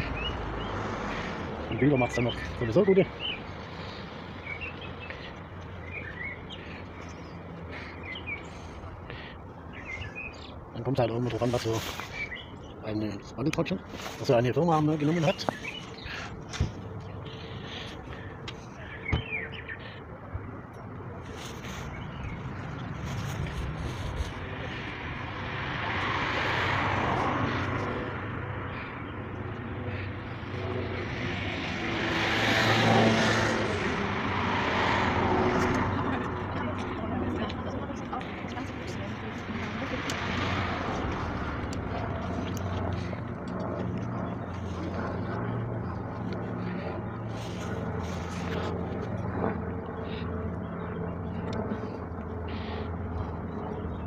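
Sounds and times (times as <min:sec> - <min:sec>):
vehicles passing: 0:00.0 - 0:54.0
construction machinery engine drone: 0:15.1 - 0:54.0.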